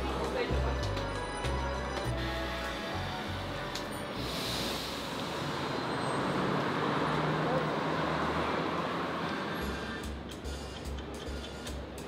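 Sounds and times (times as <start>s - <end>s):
city street traffic: 0.0s - 12.0s
vehicle passing: 2.7s - 10.3s.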